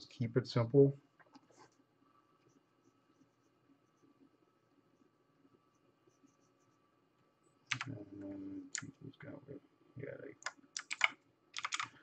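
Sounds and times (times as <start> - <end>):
man's low voice: 7.8 - 10.3
keyboard key clicks: 10.4 - 11.9.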